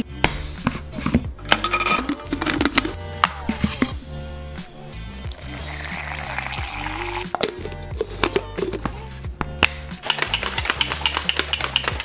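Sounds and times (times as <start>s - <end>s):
background music with bass line: 0.0s - 12.0s
water pouring into plastic bottle: 5.3s - 7.5s.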